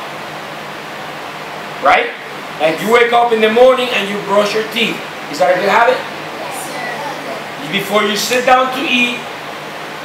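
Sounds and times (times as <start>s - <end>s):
room noise hiss: 0.0s - 10.0s
man speaking: 2.6s - 9.2s.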